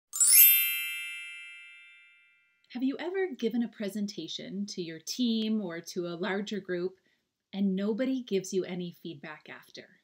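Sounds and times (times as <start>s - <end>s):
bright chime shimmer: 0.1s - 2.6s.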